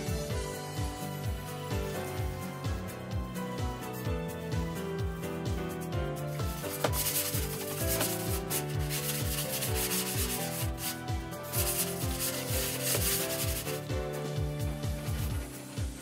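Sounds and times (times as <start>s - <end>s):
music with kick-drum beat: 0.0s - 16.0s.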